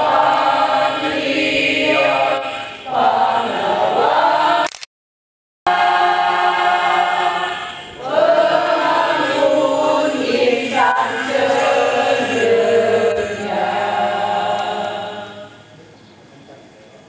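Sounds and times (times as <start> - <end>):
choir breath: 0.0 - 4.6, 5.7 - 15.8
choir singing in unison: 0.0 - 4.7, 5.7 - 15.7.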